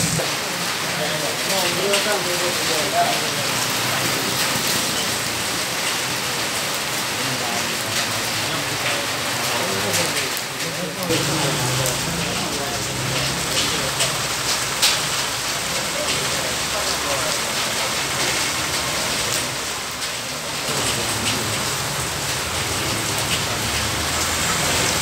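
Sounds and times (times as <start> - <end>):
rain on wet pavement: 0.0 - 25.0.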